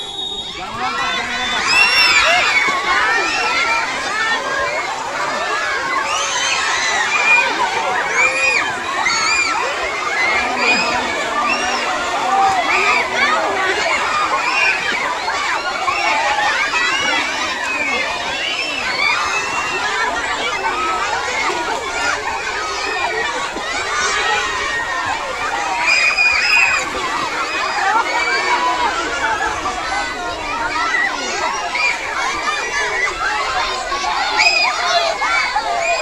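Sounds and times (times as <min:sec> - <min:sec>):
children shouting: 0:00.0 - 0:36.0.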